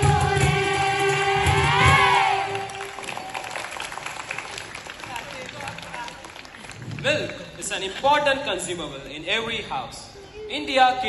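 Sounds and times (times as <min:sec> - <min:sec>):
children's choir singing: 0:00.0 - 0:03.0
audience clapping: 0:02.3 - 0:08.1.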